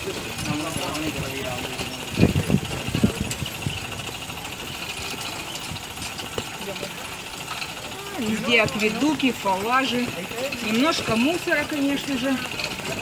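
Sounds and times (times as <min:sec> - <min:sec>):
pedal bike chain and wheels rattling: 0:00.0 - 0:13.0.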